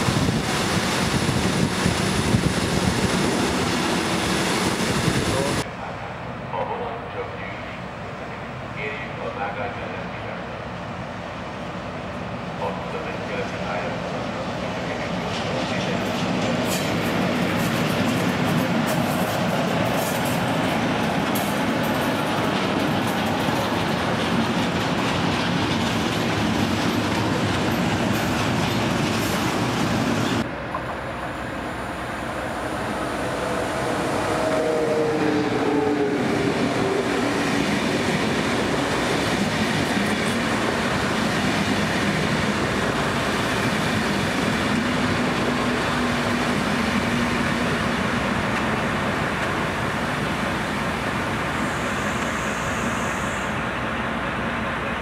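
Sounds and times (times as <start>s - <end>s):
train passing with whines: 0.0s - 55.0s
train rumbling past: 0.0s - 55.0s.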